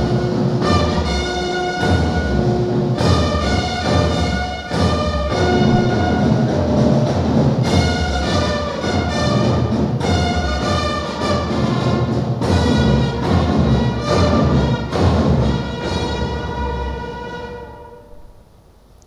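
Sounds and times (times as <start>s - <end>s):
brass band with drums: 0.0s - 18.4s.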